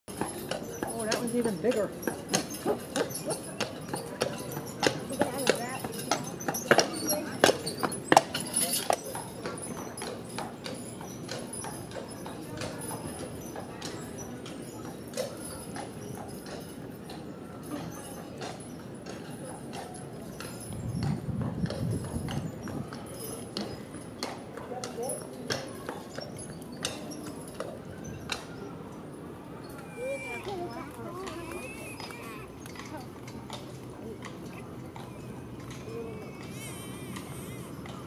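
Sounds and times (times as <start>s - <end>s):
horse hooves clip-clopping: 0.1s - 38.0s.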